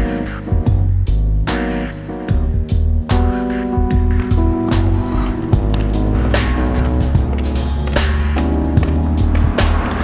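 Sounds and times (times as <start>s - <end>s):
music with steady beat and bass: 0.0s - 10.0s.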